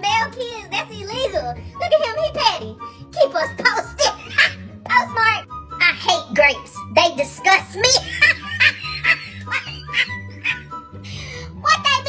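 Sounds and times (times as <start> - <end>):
background music with bass line: 0.0 - 12.0
woman laughing hard: 8.0 - 10.7.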